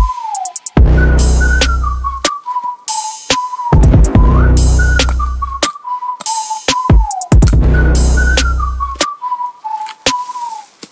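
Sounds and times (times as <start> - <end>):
electronic music: 0.0 - 9.1
whistled melody: 0.0 - 10.9
deep bass: 0.8 - 2.2, 3.8 - 5.6, 7.4 - 9.0.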